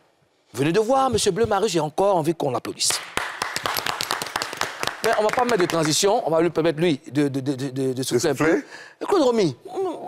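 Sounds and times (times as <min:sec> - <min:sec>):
people clapping: 0:02.8 - 0:06.2.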